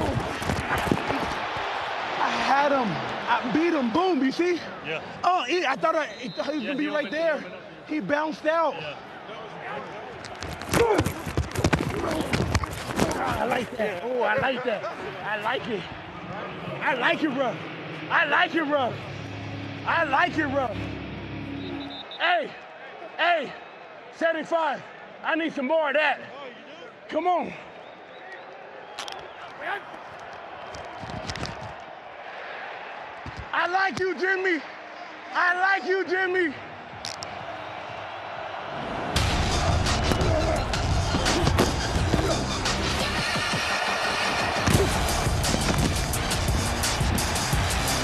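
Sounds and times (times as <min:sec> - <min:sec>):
football pads and helmets colliding: 0:00.0 - 0:01.7, 0:10.3 - 0:14.6, 0:33.2 - 0:33.5, 0:39.2 - 0:47.5
stadium crowd noise: 0:00.0 - 0:48.0.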